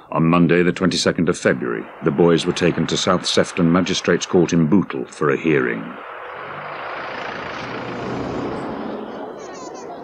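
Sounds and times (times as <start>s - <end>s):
outdoor noise: 0.0s - 10.0s
van engine running: 6.0s - 9.4s.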